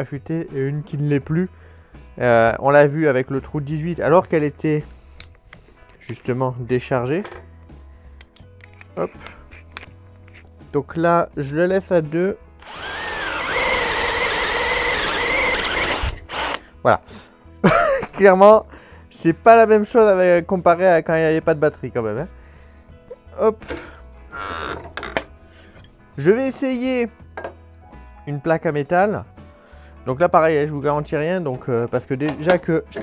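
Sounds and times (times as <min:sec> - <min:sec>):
soft background music: 0:00.0 - 0:33.0.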